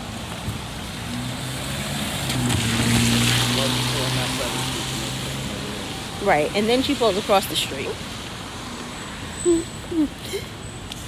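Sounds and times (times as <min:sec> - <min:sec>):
car driving past: 0:01.0 - 0:06.2.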